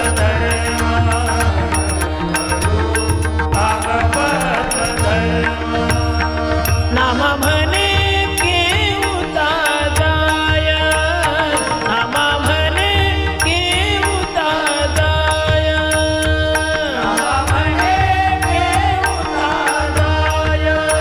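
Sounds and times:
steady drone: 0.0 - 21.0.

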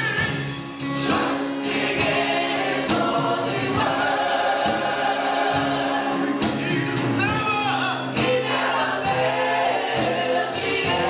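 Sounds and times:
choir singing in harmony: 0.8 - 11.0.

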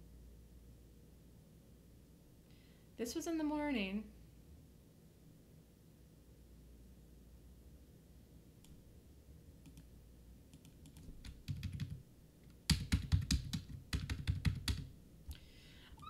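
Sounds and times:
typing on computer keyboard: 9.6 - 9.9, 10.5 - 12.0, 12.6 - 14.9.

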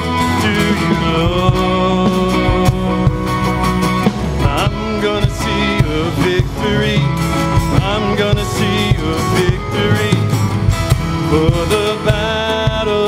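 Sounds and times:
drum kit beat: 0.0 - 13.0
electric bass: 0.0 - 13.0
man singing lead vocal: 0.0 - 13.0
strummed acoustic guitar: 0.0 - 13.0.

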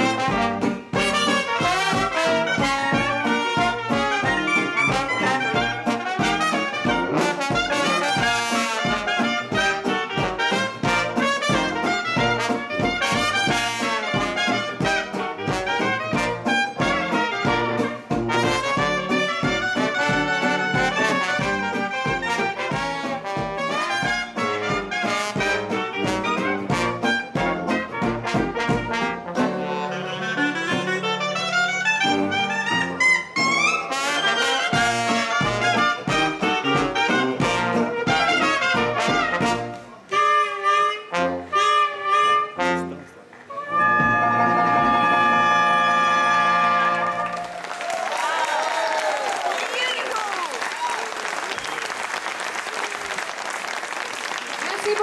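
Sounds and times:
jazz band playing: 0.0 - 48.2, 54.3 - 55.0.

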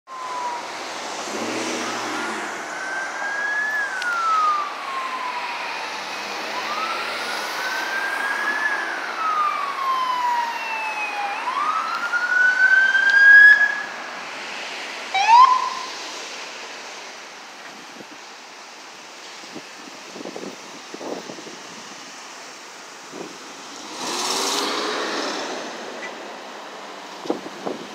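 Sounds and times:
police siren wailing: 0.1 - 14.0, 15.1 - 16.0
traffic noise: 0.1 - 27.9.

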